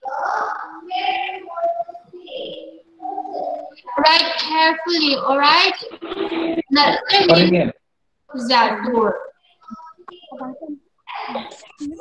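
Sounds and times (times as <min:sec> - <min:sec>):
teacher talking: 0:00.0 - 0:07.7, 0:08.3 - 0:12.0
person talking indistinctly: 0:00.0 - 0:07.8.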